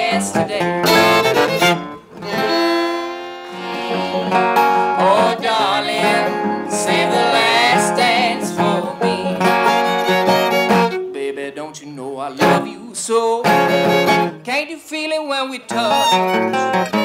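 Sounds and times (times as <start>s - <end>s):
guitar strums: 0.0s - 11.2s, 13.4s - 14.4s, 15.7s - 17.0s
string band playing: 0.0s - 11.4s, 12.4s - 12.8s, 13.4s - 14.4s, 15.7s - 17.0s.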